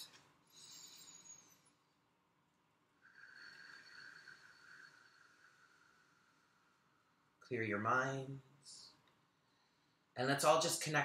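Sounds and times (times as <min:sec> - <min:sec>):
slow deep breathing: 0:00.4 - 0:02.1, 0:03.0 - 0:07.4.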